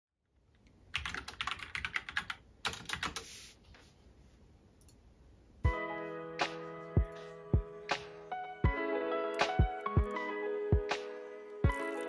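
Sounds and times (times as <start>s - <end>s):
typing on computer keyboard: 0.9s - 3.2s.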